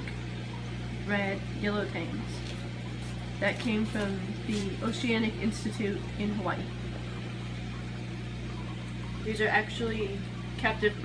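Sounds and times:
aquarium pumps humming: 0.0 - 11.0.

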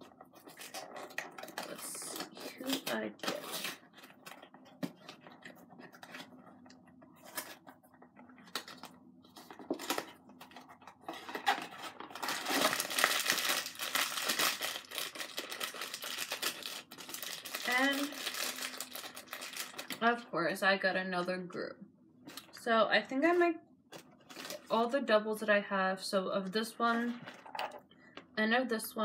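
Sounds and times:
wrapper crinkling and tearing: 0.3 - 4.5, 8.4 - 20.0, 23.9 - 24.8
packaging clicks and rustling: 7.2 - 20.0, 23.9 - 24.7.

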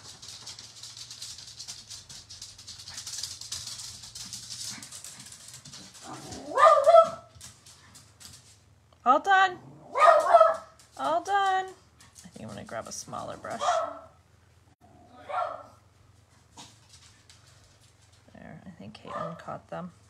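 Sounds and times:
dog barking: 6.1 - 7.3, 9.9 - 10.8, 13.6 - 14.2, 15.1 - 15.8, 19.0 - 19.5.

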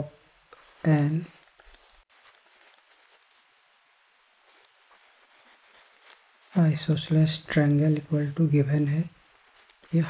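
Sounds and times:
stylus scratching on tablet: 0.6 - 3.4, 4.5 - 7.2.

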